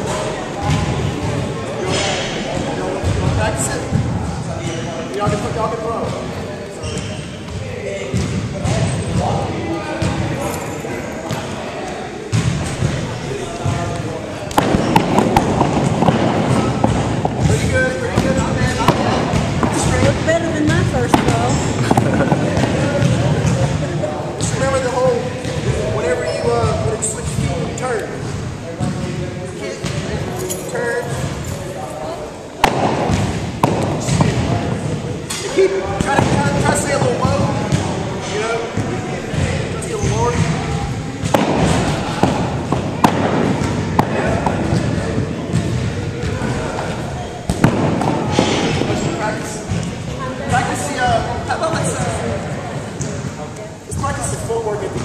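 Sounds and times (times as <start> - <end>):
people talking indistinctly: 0.0 - 55.0
balls thudding on wooden floor: 14.5 - 23.7.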